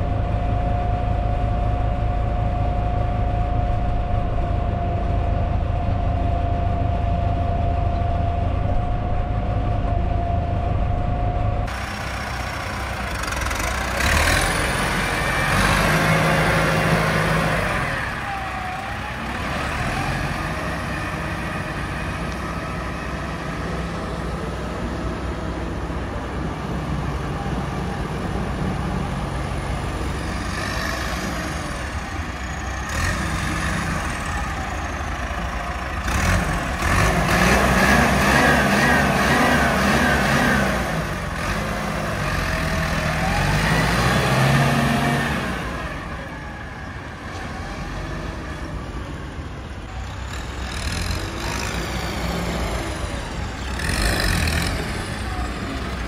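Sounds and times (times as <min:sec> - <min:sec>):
tractor diesel engine revving: 0:00.0 - 0:56.0.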